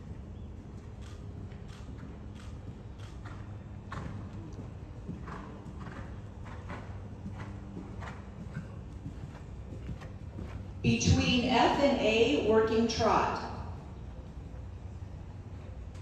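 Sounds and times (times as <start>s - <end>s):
horse hoofbeats on sand: 0.0s - 16.0s
steady low hum: 0.0s - 16.0s.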